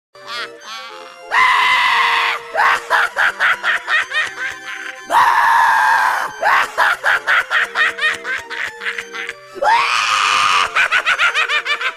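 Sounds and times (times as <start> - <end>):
choppy laugh-like cries: 0.2 - 11.9
loud scream: 1.3 - 2.9, 5.1 - 6.7, 9.6 - 10.8.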